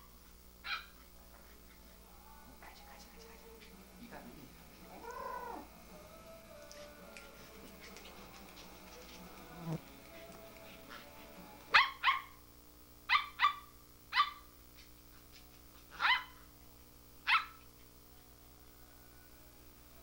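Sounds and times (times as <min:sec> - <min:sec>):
small dog barking: 0:00.6 - 0:01.0, 0:11.7 - 0:12.4, 0:13.1 - 0:14.5, 0:15.9 - 0:16.4, 0:17.2 - 0:17.7.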